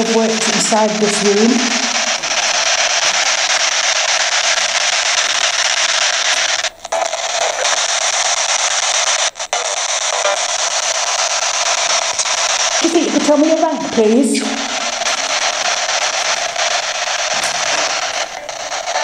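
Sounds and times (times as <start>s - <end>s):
loud static hiss: 0.0s - 19.0s.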